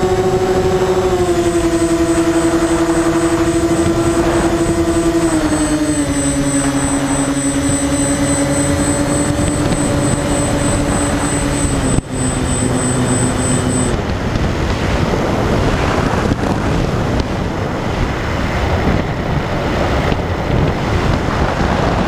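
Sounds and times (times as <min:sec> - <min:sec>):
model plane motors droning: 0:00.0 - 0:22.0
thin high whine: 0:00.0 - 0:22.0
wind rush: 0:00.0 - 0:22.0.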